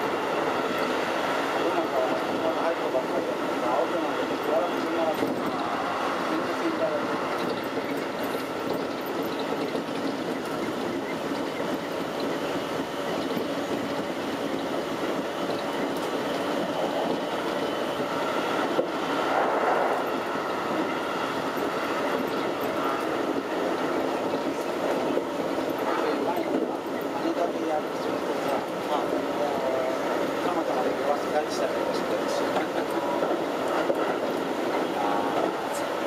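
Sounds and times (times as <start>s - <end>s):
train wheels on rail: 0.0s - 36.0s.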